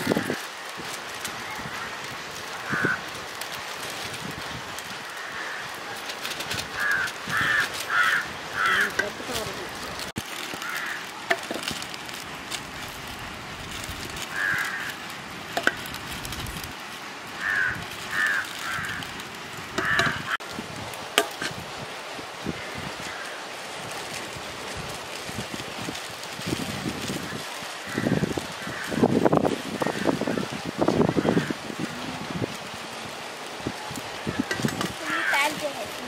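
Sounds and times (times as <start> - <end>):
foil pouches rustling: 0.0 - 36.0.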